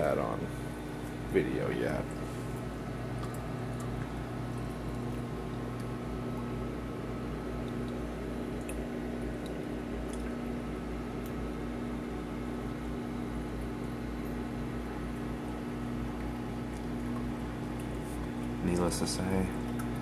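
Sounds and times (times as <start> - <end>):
aquarium pumps humming: 0.0 - 20.0
water bubbling and trickling: 1.9 - 11.4, 14.9 - 18.6.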